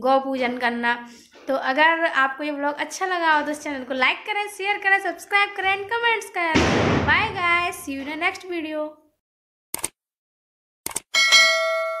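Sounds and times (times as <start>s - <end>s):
notification bell ringing: 11.1s - 12.0s.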